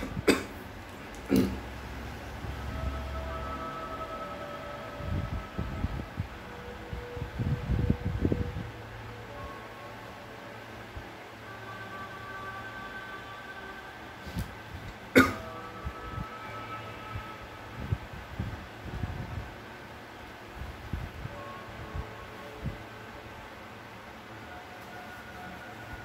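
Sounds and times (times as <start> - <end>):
person coughing and clearing throat: 0.0 - 0.6, 1.2 - 1.6, 15.1 - 15.6.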